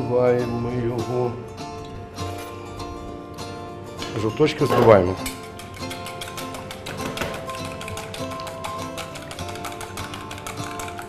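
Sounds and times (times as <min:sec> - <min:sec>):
background music: 0:00.0 - 0:11.0
whisk clicking against metal bowl: 0:04.9 - 0:11.0.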